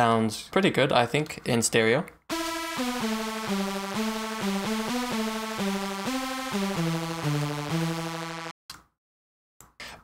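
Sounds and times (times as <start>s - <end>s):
crunchy synthesizer lead: 2.3s - 8.5s.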